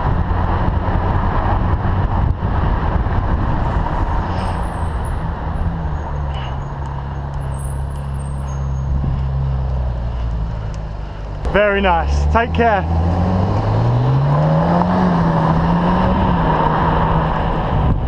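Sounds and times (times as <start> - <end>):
wind noise on microphone: 0.0 - 10.1, 12.9 - 18.0
sports car engine at low revs: 0.0 - 18.0.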